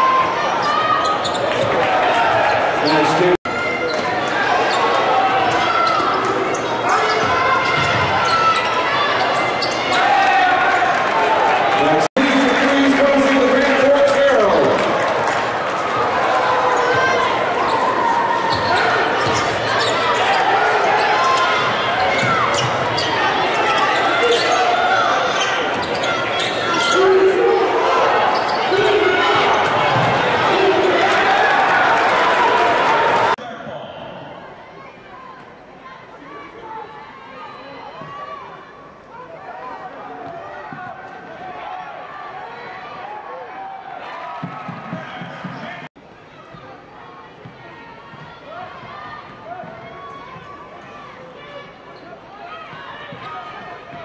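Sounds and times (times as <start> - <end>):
crowd voices: 0.0 - 54.0.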